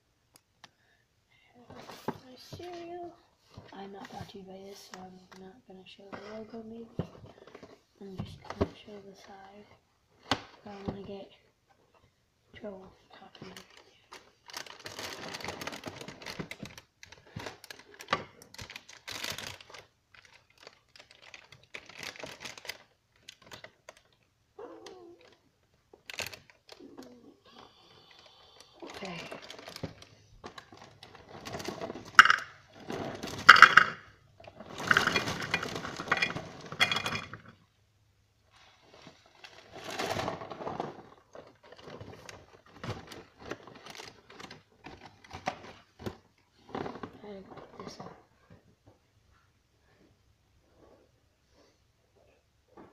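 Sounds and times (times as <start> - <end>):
plastic bag crinkling: 13.3 - 24.3, 24.9 - 28.2, 28.8 - 37.5, 38.5 - 46.1
cereal rattling into plastic bowl: 30.6 - 34.0, 34.6 - 37.5.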